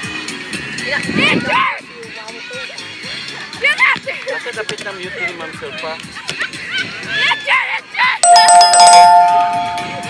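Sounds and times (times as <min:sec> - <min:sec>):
two-note ding-dong chime: 0:08.2 - 0:10.0.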